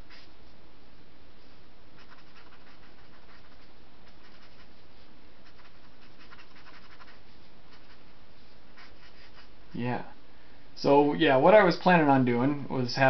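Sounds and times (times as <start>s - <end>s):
pen scratching on paper: 2.0s - 4.8s, 5.4s - 8.1s, 8.7s - 9.5s.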